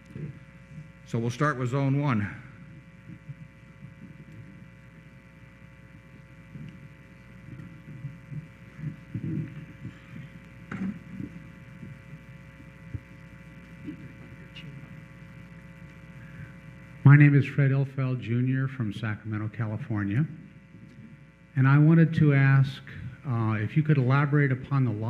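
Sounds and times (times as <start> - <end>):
electrical hum: 0.0 - 25.0.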